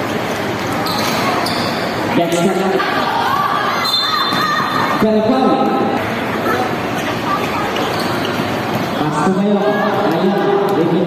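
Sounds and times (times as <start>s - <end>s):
basketball bouncing on court: 7.4s - 9.0s.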